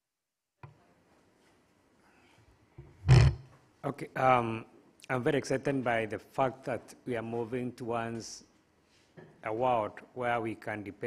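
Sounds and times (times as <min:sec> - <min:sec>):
loud burst into microphone: 0:03.0 - 0:03.4
man speaking: 0:03.8 - 0:08.4, 0:09.4 - 0:11.0.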